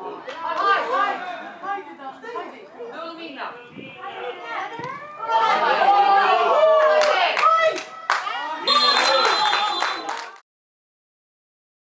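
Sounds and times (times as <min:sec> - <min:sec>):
crowd shouting: 0:03.9 - 0:10.2
sharp handclaps: 0:07.0 - 0:10.4
high steady whistle: 0:08.6 - 0:10.1.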